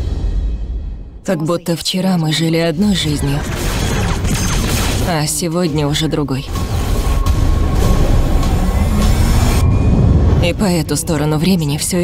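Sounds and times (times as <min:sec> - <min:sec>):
music: 0:00.0 - 0:01.4
deep rumble: 0:06.4 - 0:12.0.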